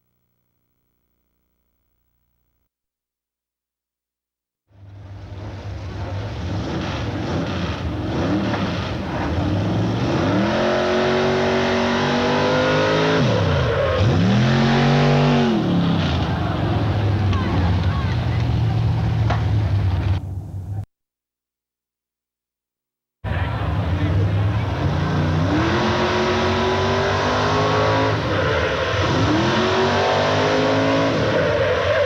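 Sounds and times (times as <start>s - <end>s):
truck engine revving: 5.2s - 20.2s, 23.3s - 32.0s.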